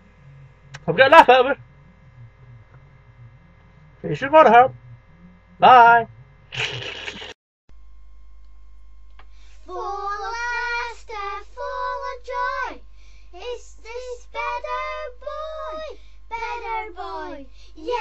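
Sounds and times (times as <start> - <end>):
child singing wordless syllables: 9.7 - 18.0.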